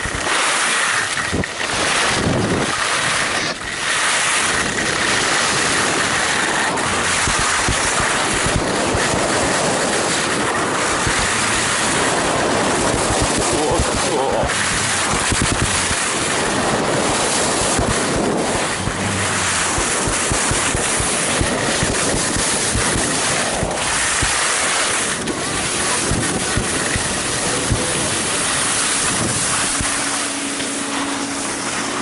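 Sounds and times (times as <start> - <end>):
skis sliding over snow: 0.0 - 32.0
steady low hum: 0.0 - 32.0
wind rushing over microphone: 0.0 - 32.0.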